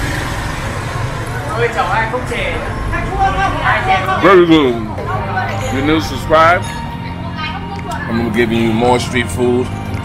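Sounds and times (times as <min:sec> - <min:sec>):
motorbike and car engines humming: 0:00.0 - 0:10.0
voices: 0:01.1 - 0:10.0.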